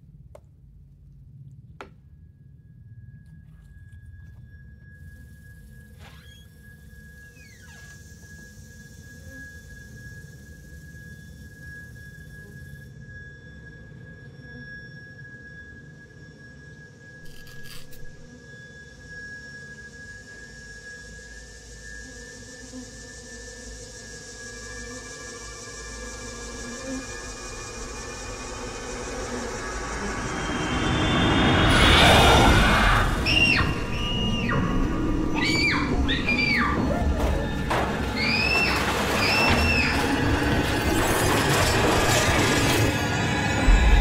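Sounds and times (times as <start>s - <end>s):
suspense film score drones: 0.0s - 44.0s
shrill bending squeals: 4.2s - 18.3s, 24.3s - 44.0s.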